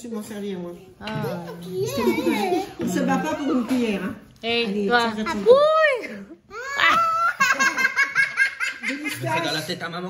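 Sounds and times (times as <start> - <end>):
boys laughing hard: 6.6 - 9.5.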